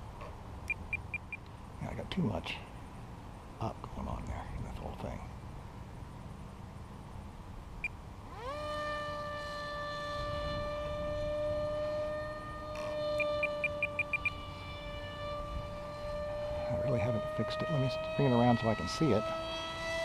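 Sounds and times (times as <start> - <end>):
electric motor and propeller whine: 5.4 - 20.0.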